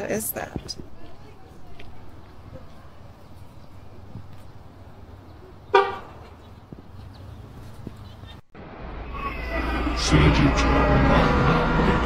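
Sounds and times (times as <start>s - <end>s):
low outdoor rumble: 0.0s - 12.0s
car horn toot: 5.7s - 6.2s.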